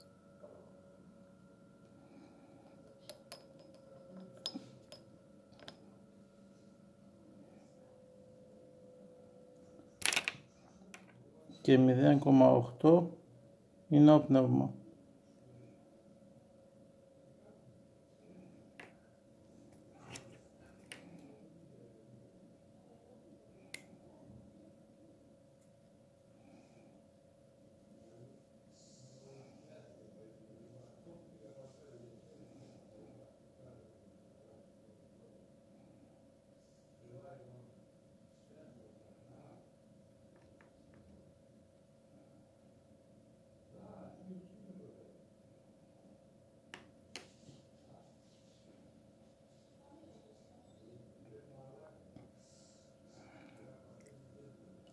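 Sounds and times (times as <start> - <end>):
faint steady hum: 0.0 - 54.9.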